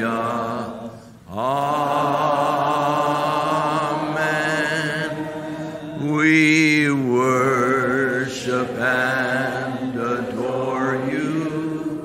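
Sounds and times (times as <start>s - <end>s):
congregation singing worship chorus: 0.0s - 12.0s.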